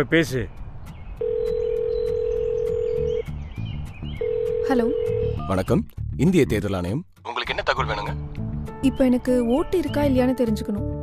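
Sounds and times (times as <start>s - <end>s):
telephone ringback tone: 1.2s - 3.2s, 4.2s - 5.5s.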